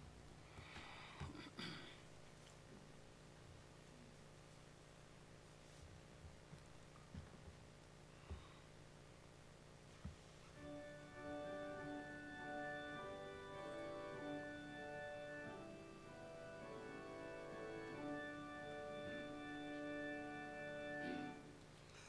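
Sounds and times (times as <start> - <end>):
organ sustained chords: 10.6 - 21.9.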